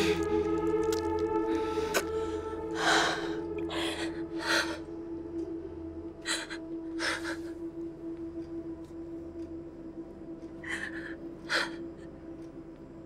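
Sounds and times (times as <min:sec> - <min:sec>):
drone-like film score music: 0:00.0 - 0:13.0.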